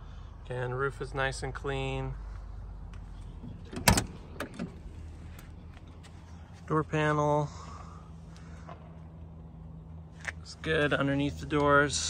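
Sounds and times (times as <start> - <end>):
car door latch clicking: 3.5 - 4.8.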